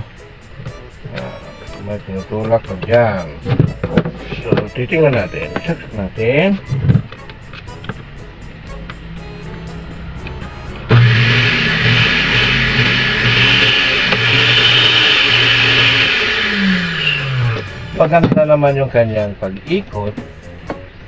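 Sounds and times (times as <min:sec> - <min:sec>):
blender motor running: 0:09.7 - 0:18.0.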